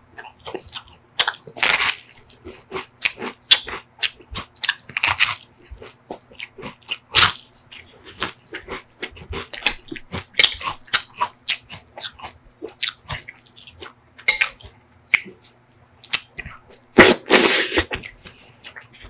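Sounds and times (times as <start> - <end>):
crunching and chewing ice cream cone: 0.2 - 14.0.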